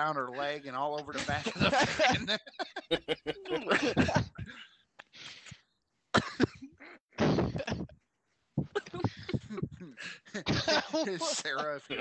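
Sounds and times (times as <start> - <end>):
man coughing: 3.4 - 4.7, 6.2 - 7.9, 8.6 - 12.0.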